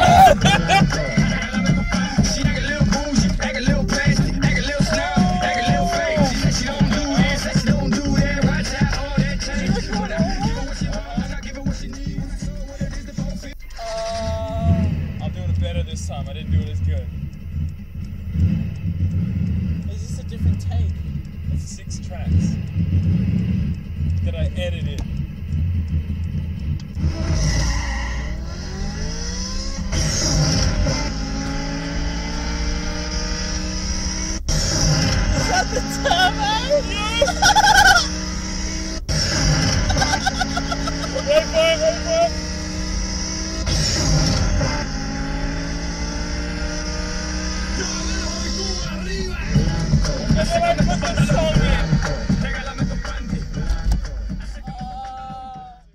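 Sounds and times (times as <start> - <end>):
car engine and road noise: 0.0 - 55.9.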